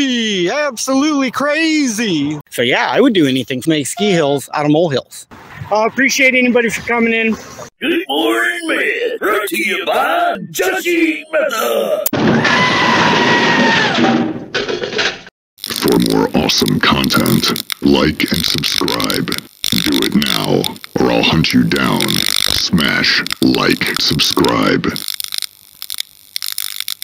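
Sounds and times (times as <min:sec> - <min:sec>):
electrical clicks and crackles: 0:15.6 - 0:27.0.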